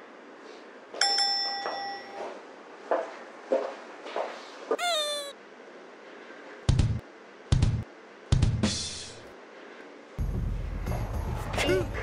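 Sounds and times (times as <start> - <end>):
meow-like cat call: 4.8 - 5.3.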